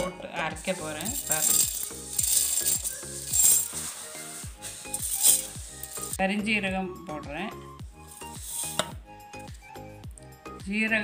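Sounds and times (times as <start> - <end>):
background music: 0.0 - 11.0
seeds rattling into metal jar: 0.8 - 6.2, 8.1 - 8.9.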